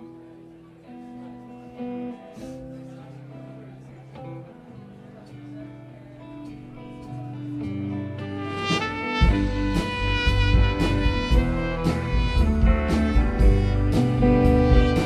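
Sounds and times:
slow guitar chords: 0:00.0 - 0:15.0.

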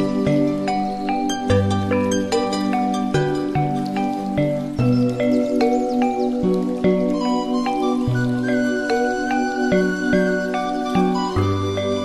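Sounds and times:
plucked melody: 0:00.0 - 0:12.0.

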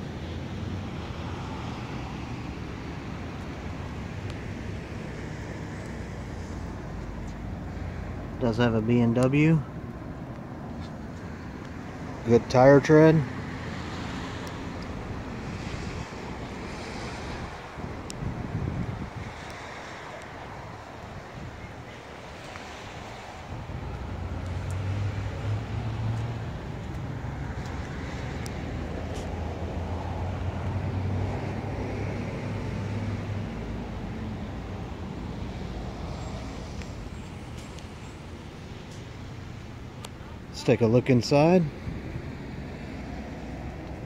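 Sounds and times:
low engine hum: 0:00.0 - 0:44.0
traffic noise: 0:00.0 - 0:44.0
wind on microphone: 0:14.9 - 0:32.9.

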